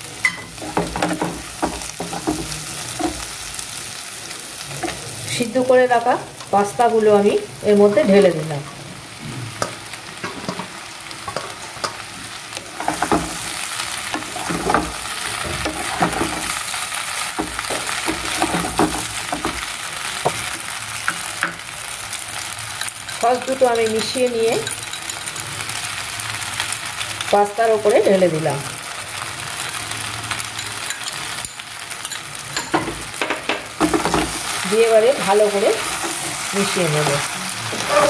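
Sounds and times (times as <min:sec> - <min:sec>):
food sizzling in a frying pan: 0:00.0 - 0:38.0
spatula scraping a pan: 0:12.8 - 0:21.3, 0:37.6 - 0:38.0.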